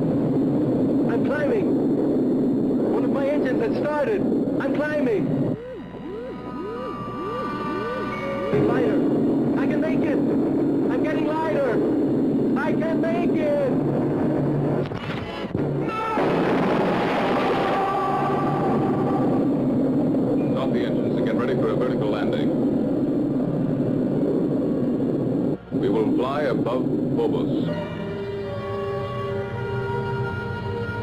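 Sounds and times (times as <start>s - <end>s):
steady low rumble: 0.0s - 28.8s
rushing noise: 0.0s - 29.2s
warbling electronic tones: 4.6s - 12.2s.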